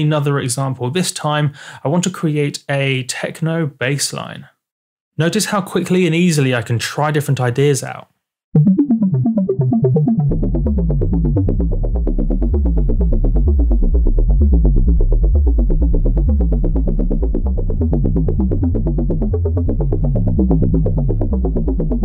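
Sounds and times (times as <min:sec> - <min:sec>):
synthesizer techno bassline: 0:08.6 - 0:22.0.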